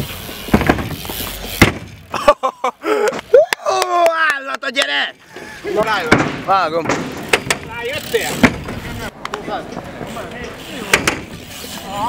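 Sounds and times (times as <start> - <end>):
bike rolling on skatepark surface: 0.0 - 12.0.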